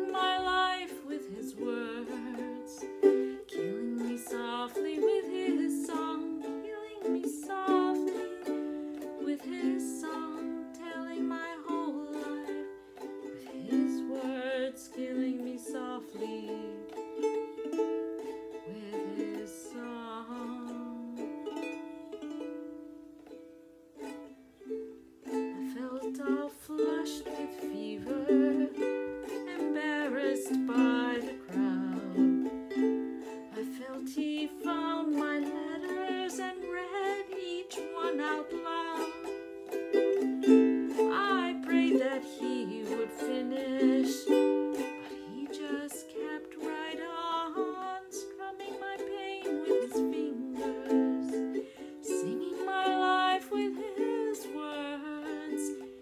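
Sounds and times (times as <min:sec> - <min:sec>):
ukulele accompaniment: 0:00.0 - 0:56.0
woman singing slow ballad: 0:03.5 - 0:08.2, 0:09.2 - 0:12.6, 0:18.7 - 0:21.2, 0:25.6 - 0:32.4, 0:33.5 - 0:39.1, 0:41.0 - 0:44.4, 0:45.2 - 0:55.8.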